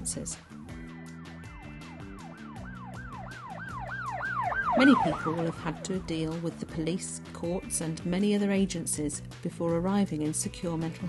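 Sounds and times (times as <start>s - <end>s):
soft music with ticking beat: 0.0s - 11.0s
emergency vehicle siren: 2.0s - 6.0s.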